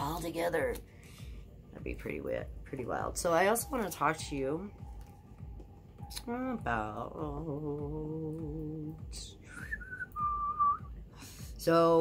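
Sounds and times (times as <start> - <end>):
person whistling two notes: 9.5 - 11.0.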